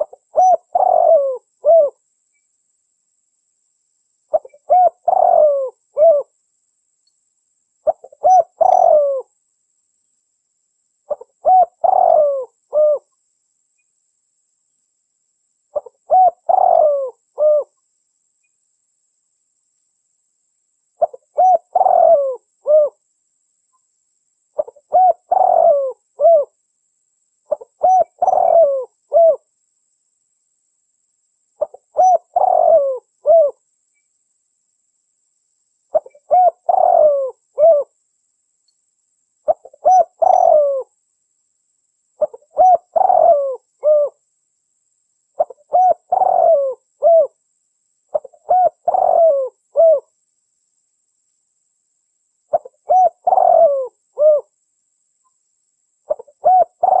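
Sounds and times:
dove cooing: 0.0 - 2.0, 4.3 - 6.3, 7.8 - 9.3, 11.1 - 13.1, 15.7 - 17.8, 21.0 - 23.0, 24.6 - 26.6, 27.5 - 29.5, 31.6 - 33.6, 35.9 - 37.9, 39.5 - 40.9, 42.2 - 44.2, 45.4 - 47.4, 48.1 - 50.1, 52.5 - 54.5, 56.1 - 57.0.

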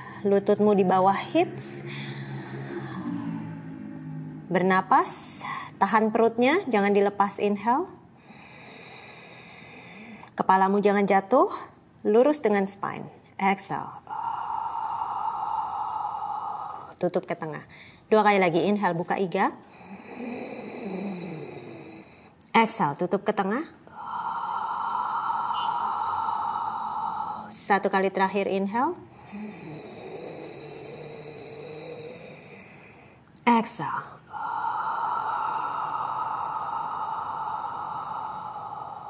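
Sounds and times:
woman inhaling slowly: 0.0 - 0.3, 1.5 - 4.2, 8.1 - 10.4, 14.0 - 17.0, 19.6 - 22.4, 23.7 - 27.8, 29.0 - 39.0
woman exhaling through mouth: 23.9 - 27.6, 34.2 - 39.0.

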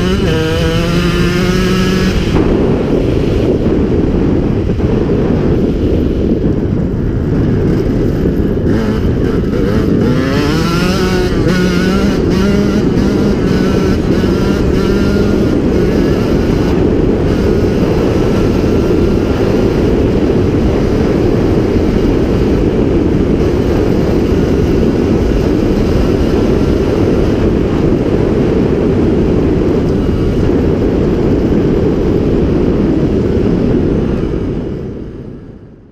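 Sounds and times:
two-stroke motorcycle engine revving: 0.0 - 35.0.

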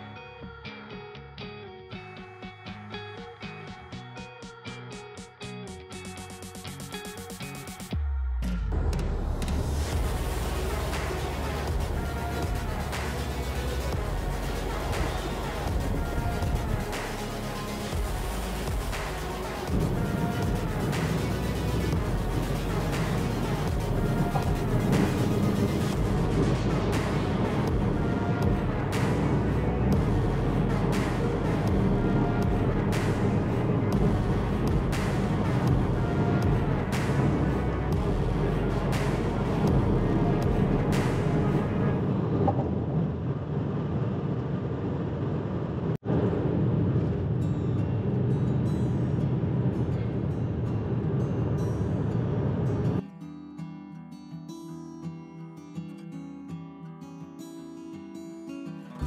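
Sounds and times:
background music with steady beat: 1.9 - 42.0
low rumble: 8.0 - 53.0
acoustic guitar strumming: 47.4 - 59.0.

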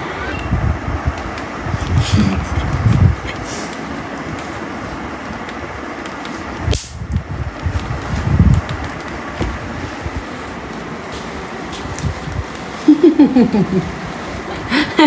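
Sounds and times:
fan-like hiss: 0.0 - 15.0
electric racket snap: 5.3 - 9.1.

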